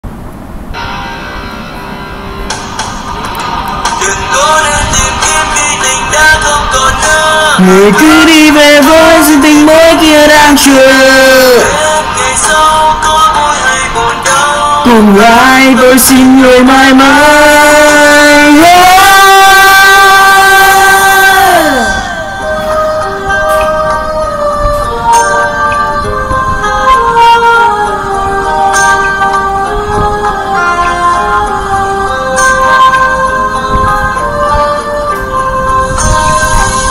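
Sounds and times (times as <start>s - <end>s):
pop-rock backing track with guitar: 0.8s - 19.5s, 21.6s - 36.9s
man singing a long high note: 3.8s - 36.9s.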